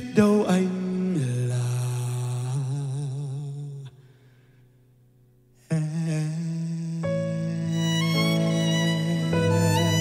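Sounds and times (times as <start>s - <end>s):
man singing low held note: 0.0s - 4.0s, 5.6s - 10.0s.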